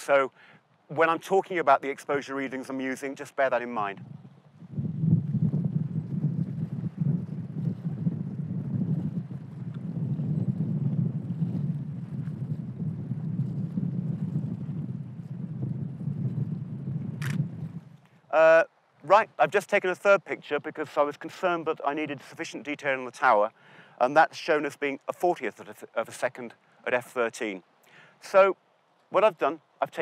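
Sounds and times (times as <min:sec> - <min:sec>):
wind buffeting microphone: 0:00.9 - 0:22.6.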